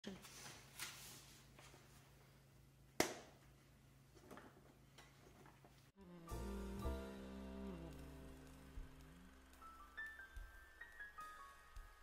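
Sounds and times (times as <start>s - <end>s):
faint low hum: 6.1s - 11.2s.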